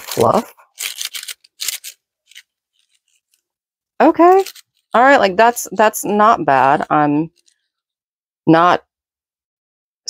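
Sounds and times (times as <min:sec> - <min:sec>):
paper crinkling: 0:00.0 - 0:03.5, 0:04.2 - 0:04.9.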